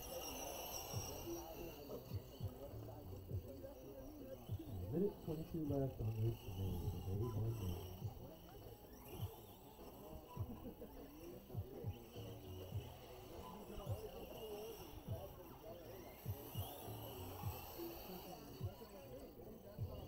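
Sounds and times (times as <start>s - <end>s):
faint high hum: 0.0s - 20.0s
faint indistinct voices: 0.0s - 20.0s.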